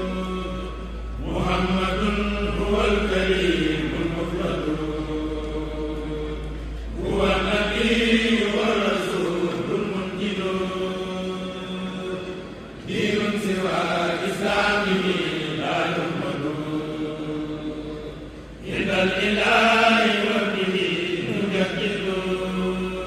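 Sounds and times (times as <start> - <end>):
men chanting through microphones: 0.0 - 23.0.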